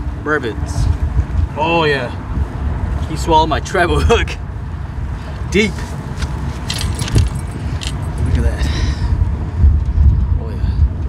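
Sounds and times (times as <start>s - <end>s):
wind buffeting microphone: 0.0s - 11.0s
light clicks and rattles: 6.2s - 8.6s.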